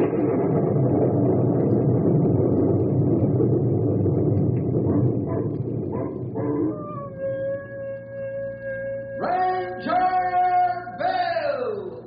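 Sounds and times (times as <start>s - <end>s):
dense rumbling noise: 0.0s - 10.7s
wolf-like howl: 5.3s - 9.3s.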